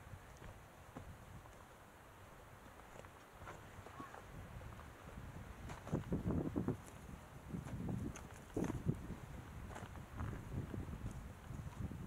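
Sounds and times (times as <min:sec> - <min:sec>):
footsteps on rocky dirt trail: 0:00.0 - 0:12.0
quiet outdoor hiss: 0:00.0 - 0:12.0.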